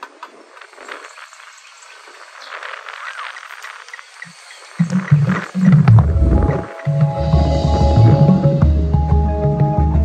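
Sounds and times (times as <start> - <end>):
percussion ensemble music: 4.8 - 10.0.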